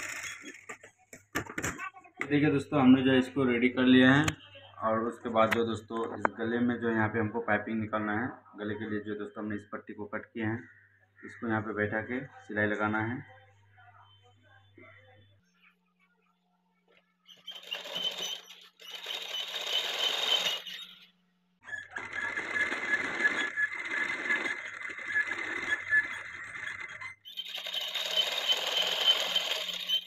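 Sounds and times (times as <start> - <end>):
electric sewing machine stitching: 0.0 - 0.8, 17.4 - 21.0, 21.8 - 30.0.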